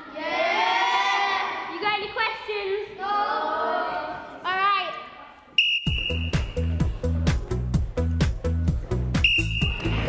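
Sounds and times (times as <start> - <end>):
sports whistle blast: 5.6 - 6.8, 9.2 - 10.0
background music with steady beat: 5.6 - 10.0.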